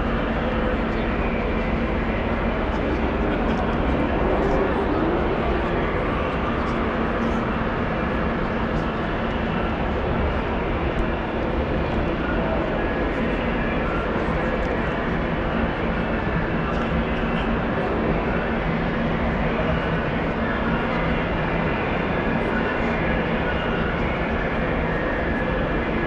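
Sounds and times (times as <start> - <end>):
constant roar: 0.0 - 26.0
faint crowd chatter: 0.0 - 26.0.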